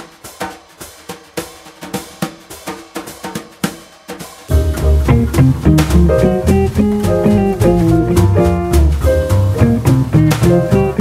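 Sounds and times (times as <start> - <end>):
drum kit playing a steady beat: 0.0 - 11.0.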